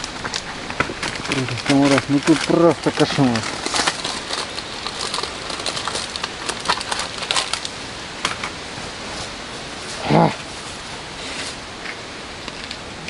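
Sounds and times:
packet crackling and clicking: 0.0s - 8.5s
steady background hiss: 0.0s - 13.0s.

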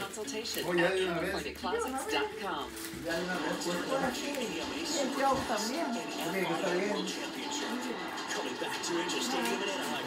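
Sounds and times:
voice over music from tv: 0.0s - 10.0s.

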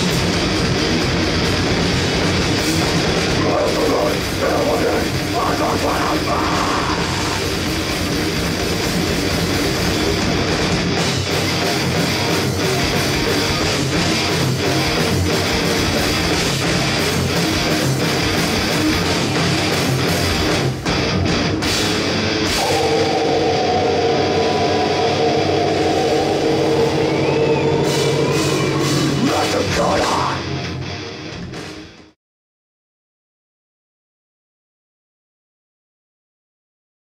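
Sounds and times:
bass guitar: 0.0s - 32.2s
distorted electric guitar: 0.0s - 32.2s.

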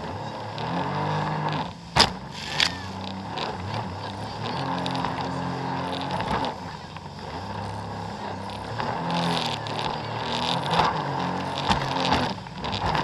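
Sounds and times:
jet ski engine running: 0.0s - 13.0s.

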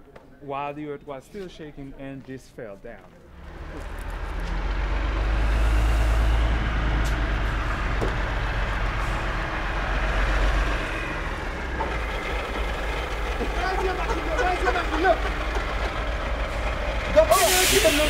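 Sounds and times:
diesel truck engine rumbling: 3.2s - 18.0s.

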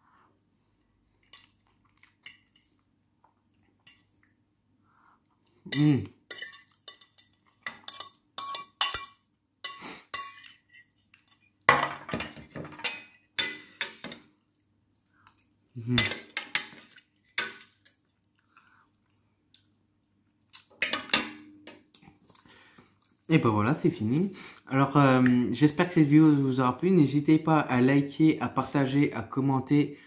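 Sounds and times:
fork scraping a plate: 9.7s - 11.4s.

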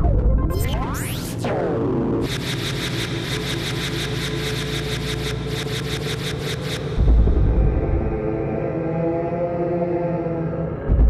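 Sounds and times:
steady low drone: 1.4s - 11.0s
fast ticking pulse: 2.2s - 7.2s.

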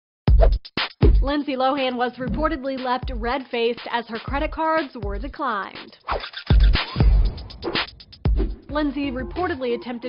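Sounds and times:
record scratch effects: 6.0s - 9.6s
heavy bass hits: 6.5s - 8.9s.

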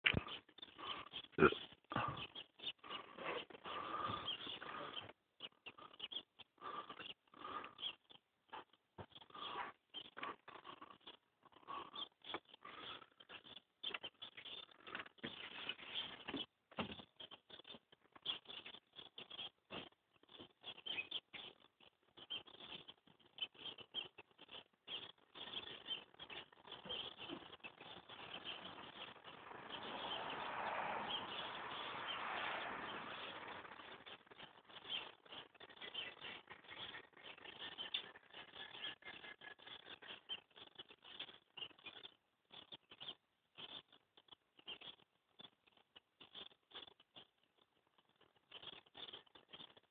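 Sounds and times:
small bird squeaky chirps: 20.3s - 47.3s.

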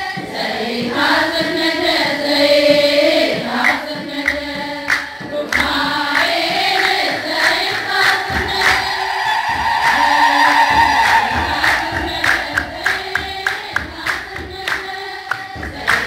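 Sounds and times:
choir and congregation singing: 0.0s - 16.0s
sharp rhythmic strikes: 0.0s - 16.0s.

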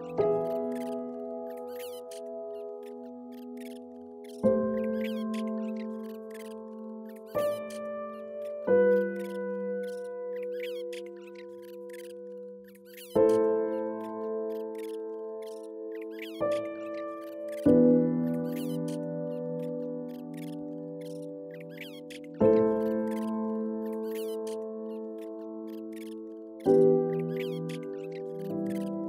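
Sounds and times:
birds chirping: 0.0s - 29.0s
slow piano chords: 0.0s - 29.0s.

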